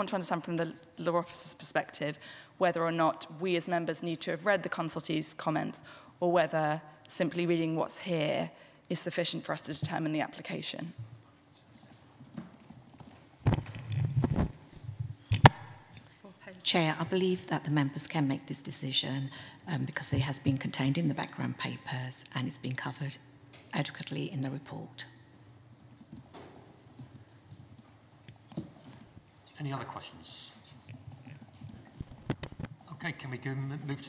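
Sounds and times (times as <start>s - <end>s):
microphone handling rumble and knocks: 13.4s - 15.6s, 32.0s - 32.8s
faint irregular clicks and taps: 25.5s - 29.2s.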